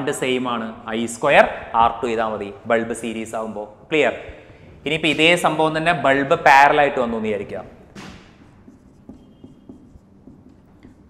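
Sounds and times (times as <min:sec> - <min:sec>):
marker writing on whiteboard: 0:08.0 - 0:11.0
marker squeak: 0:08.1 - 0:11.0.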